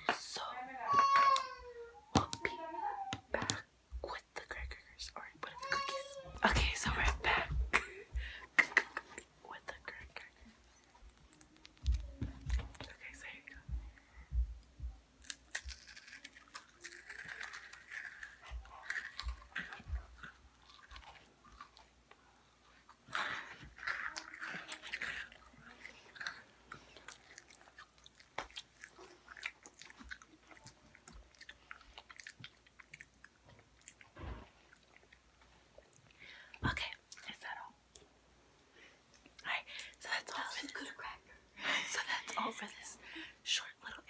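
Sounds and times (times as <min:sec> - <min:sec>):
faint whispering: 0:00.0 - 0:00.9, 0:02.2 - 0:14.3, 0:36.6 - 0:37.8, 0:39.4 - 0:44.0
crunching and chewing cookies: 0:08.2 - 0:38.1.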